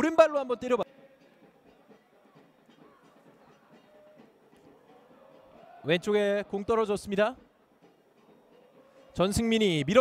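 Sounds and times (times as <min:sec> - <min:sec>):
faint stadium background noise: 0:00.0 - 0:10.0.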